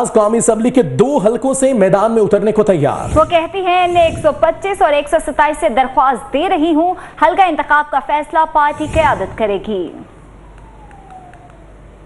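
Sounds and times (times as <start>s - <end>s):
low hum and hiss: 0.0s - 12.0s
tone sliding down in pitch: 10.2s - 12.0s.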